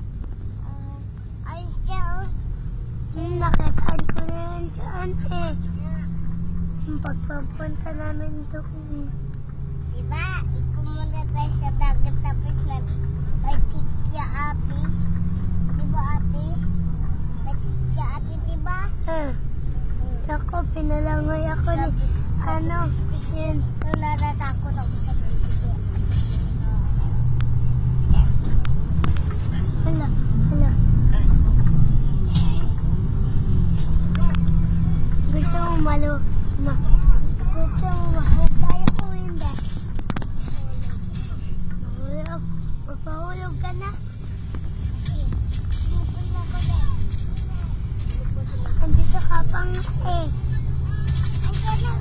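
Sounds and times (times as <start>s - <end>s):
vehicle engine and road drone: 0.0s - 52.0s.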